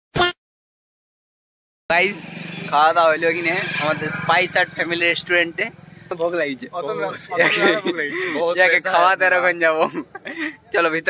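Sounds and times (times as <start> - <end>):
motorcycle engine running: 1.9 - 6.6
young man calling loudly: 1.9 - 9.8.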